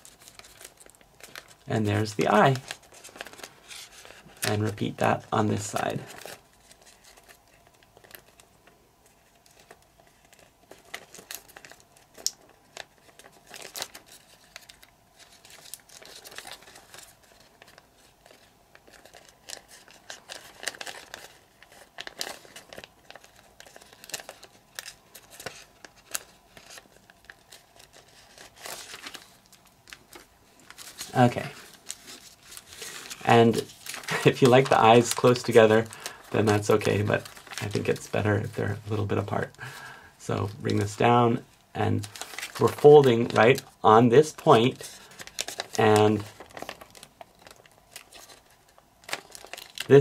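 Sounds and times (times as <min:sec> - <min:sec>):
paper crinkling as folded: 0:00.0 - 0:50.0.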